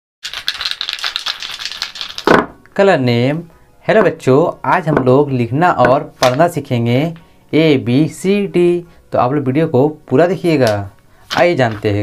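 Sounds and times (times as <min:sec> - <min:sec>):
plastic bottles clicking together: 0:00.2 - 0:02.5.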